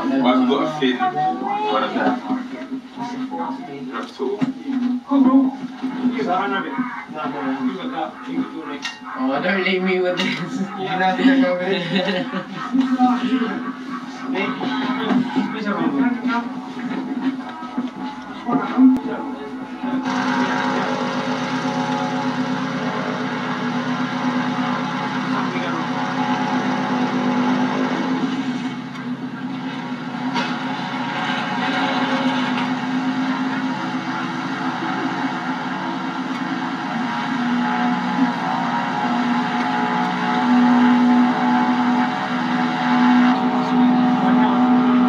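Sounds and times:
propeller aircraft engine droning: 0:19.8 - 0:45.0.

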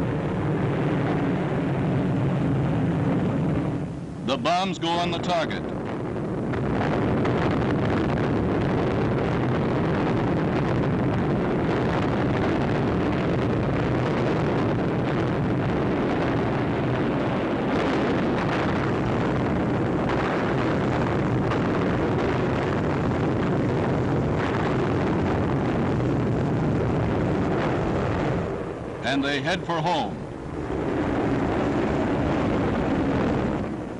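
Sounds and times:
bombs exploding: 0:00.0 - 0:33.9.

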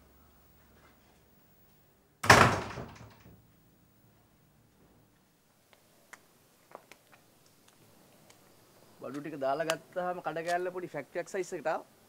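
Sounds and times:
wooden door slamming: 0:02.2 - 0:03.4.

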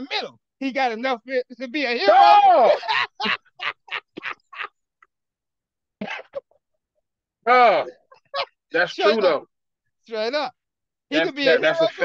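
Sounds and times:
man laughing: 0:02.6 - 0:04.9, 0:08.0 - 0:08.7.

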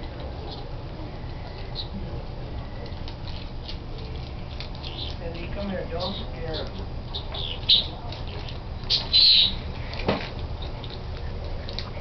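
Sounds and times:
high-pitched animal squeaks: 0:07.1 - 0:09.7.

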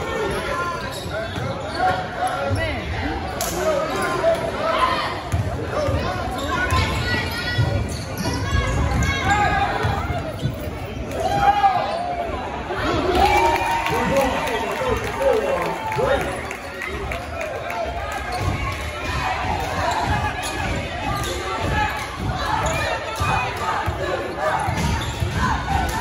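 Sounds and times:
sneakers squeaking: 0:00.0 - 0:04.5, 0:05.1 - 0:12.3, 0:16.6 - 0:26.0
spectators' voices: 0:00.0 - 0:26.0.

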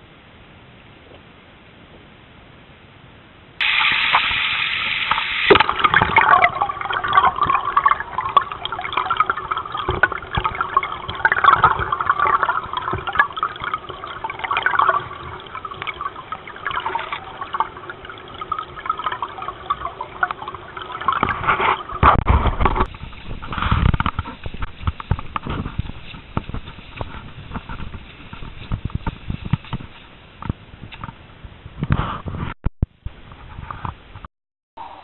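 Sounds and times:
underwater stream rushing: 0:03.6 - 0:31.1.

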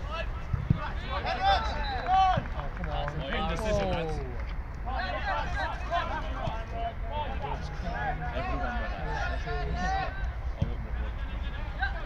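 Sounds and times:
players shouting: 0:00.0 - 0:10.4.

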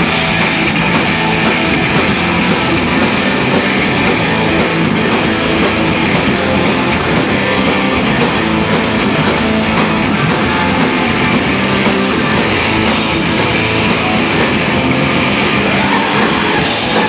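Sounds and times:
loud noise-rock band: 0:00.0 - 0:17.0.

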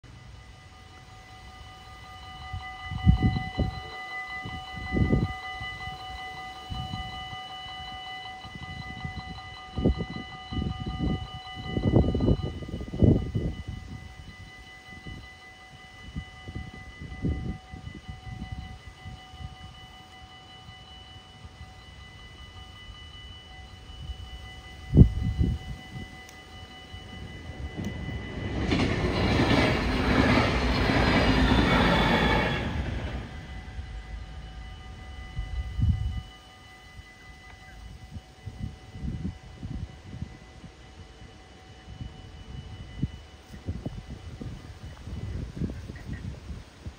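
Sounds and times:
level-crossing bells ringing: 0:00.0 - 0:45.9
electric train passing: 0:00.0 - 0:46.9.

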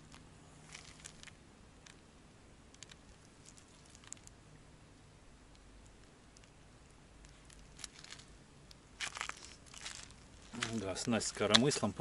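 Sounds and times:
fishing line clicks: 0:02.7 - 0:04.4
footsteps on pebbly shore: 0:09.0 - 0:12.0.

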